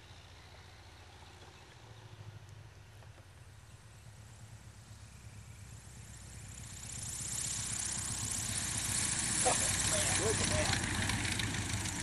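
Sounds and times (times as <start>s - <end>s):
light aircraft engine and propeller: 0.0s - 12.0s
rising hiss: 6.0s - 12.0s.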